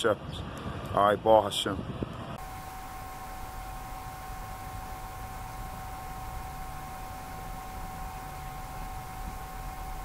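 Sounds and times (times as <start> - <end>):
steady hiss: 2.4 - 10.0.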